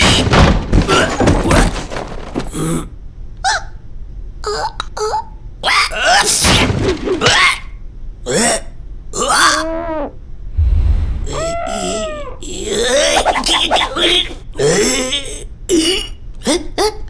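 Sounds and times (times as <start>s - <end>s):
low thump: 10.6s - 11.6s.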